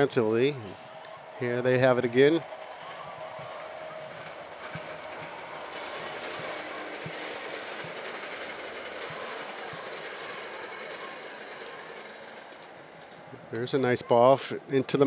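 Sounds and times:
steady rushing noise: 0.0 - 15.0.

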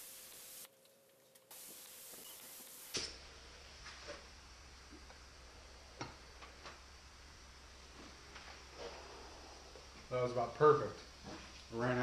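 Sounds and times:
spray gun hissing: 0.0 - 0.7, 1.5 - 3.9
low hum: 3.1 - 11.8.

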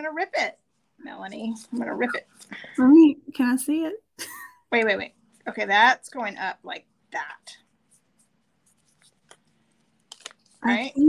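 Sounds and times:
paper crinkling: 7.9 - 10.9.

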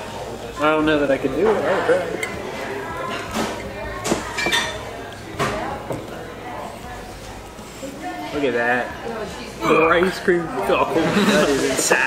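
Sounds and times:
spoon clinking on glass and plates: 4.2 - 4.9.

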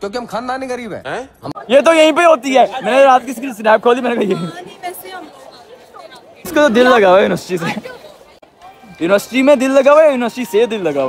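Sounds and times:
background chatter: 0.1 - 11.0.

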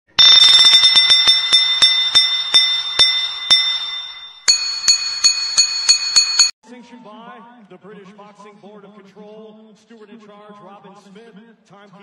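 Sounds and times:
bell struck rapidly: 0.1 - 6.6.

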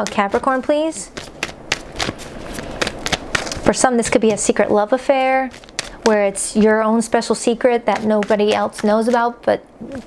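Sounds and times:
cards being shuffled by hand: 0.0 - 10.0.

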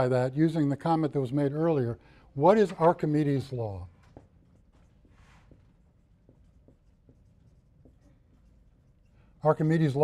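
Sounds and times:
marker writing on whiteboard: 2.5 - 10.0.

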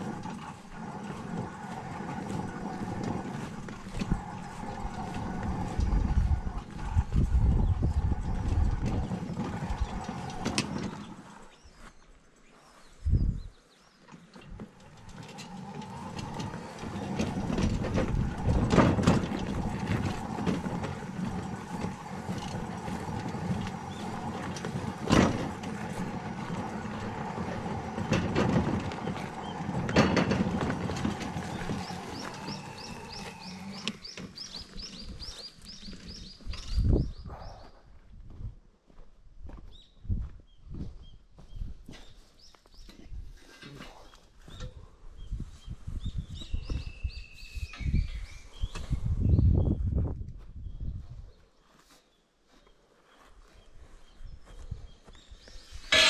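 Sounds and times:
wheelbarrow frame clattering: 0.0 - 11.5, 14.2 - 36.6
electric motor hum: 14.8 - 34.5
scattered knocks: 15.0 - 34.5
bird chirping: 31.4 - 37.8.

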